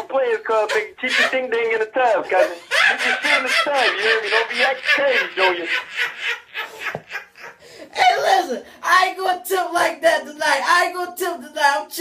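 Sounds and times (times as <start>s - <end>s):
person laughing: 0.7s - 7.8s.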